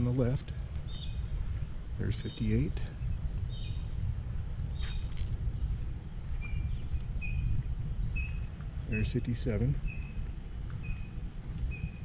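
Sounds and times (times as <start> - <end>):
songbirds chirping: 0.0 - 12.0
vehicle rumbling slowly: 0.0 - 12.0.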